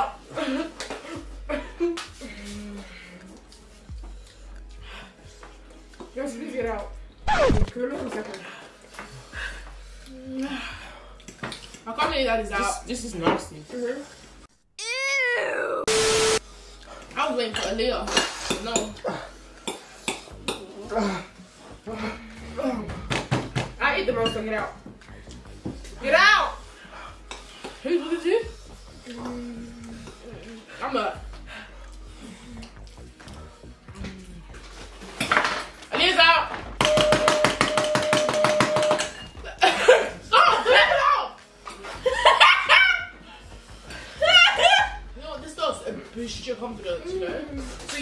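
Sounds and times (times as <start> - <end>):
buzzer-like tone: 15.9 - 16.4.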